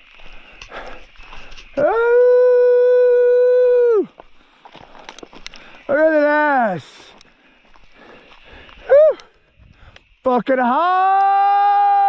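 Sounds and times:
man whooping call: 1.8s - 4.1s, 8.9s - 9.3s, 10.7s - 12.0s
man yelling: 1.8s - 4.1s, 10.3s - 12.0s.

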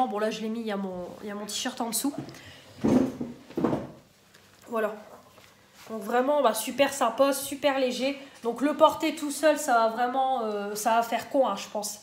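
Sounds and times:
close rustling and handling noise: 0.3s - 6.9s.

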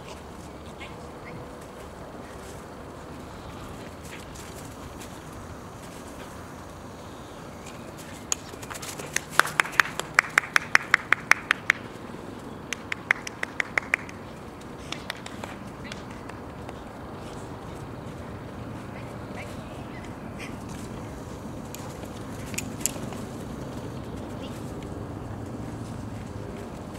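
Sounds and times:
faint steady background noise: 0.0s - 26.9s.

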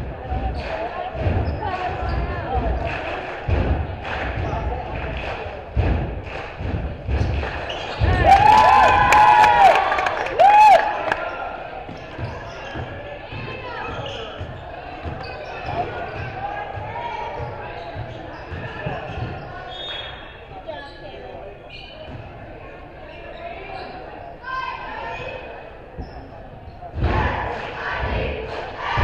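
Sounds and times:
shoes squealing: 7.2s - 8.6s, 11.2s - 22.4s, 23.0s - 26.9s
people shouting: 27.0s - 29.0s.

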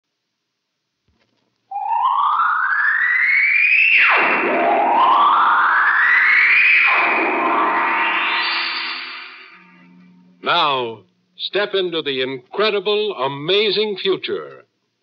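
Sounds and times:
electronic rising swoops: 4.2s - 10.6s
held chord: 9.2s - 11.4s.

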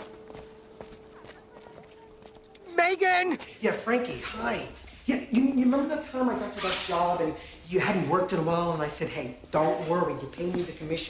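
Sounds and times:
faint steady hum: 0.0s - 2.7s.

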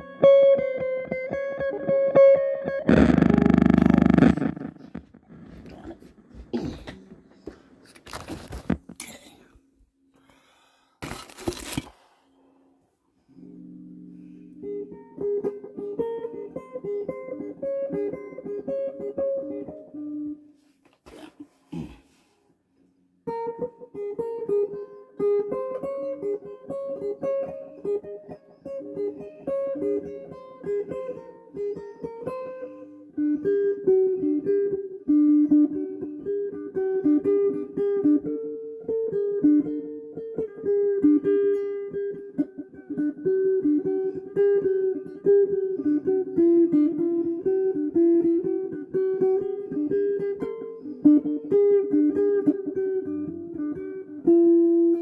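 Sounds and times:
electric guitar playing solo: 0.0s - 7.5s, 13.4s - 20.4s, 23.2s - 55.0s.

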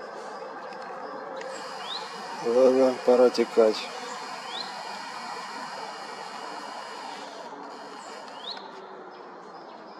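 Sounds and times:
rising bird chirp: 0.0s - 8.8s
distant traffic: 0.0s - 9.9s.

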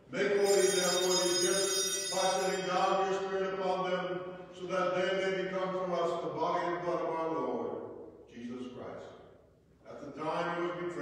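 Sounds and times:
man chanting on one tone: 0.1s - 4.0s.

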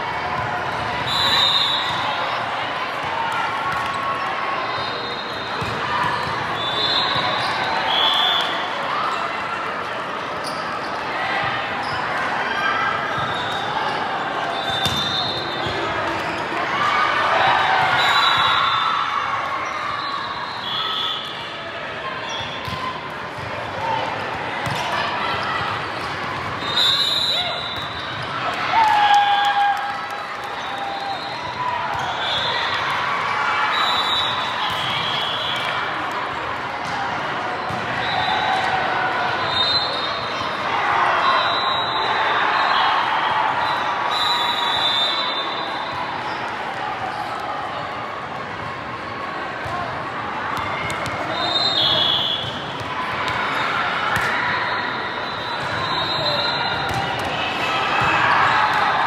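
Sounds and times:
referee whistle blasts: 1.0s - 2.2s, 6.5s - 8.6s, 14.6s - 15.6s, 20.0s - 21.4s, 26.6s - 28.1s, 33.7s - 35.8s, 41.2s - 42.9s, 43.6s - 45.9s, 51.3s - 52.6s, 54.6s - 57.0s.

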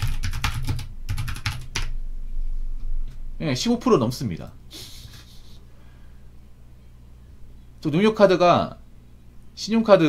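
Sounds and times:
typing on computer keyboard: 0.0s - 1.9s.

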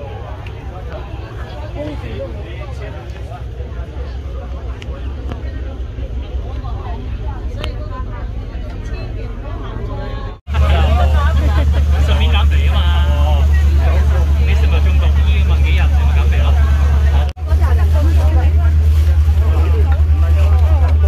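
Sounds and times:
boat engine droning: 0.0s - 21.0s
people talking: 0.0s - 21.0s.

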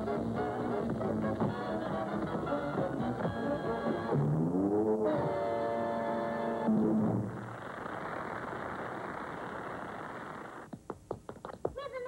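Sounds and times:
hiss-like noise: 7.3s - 10.7s.

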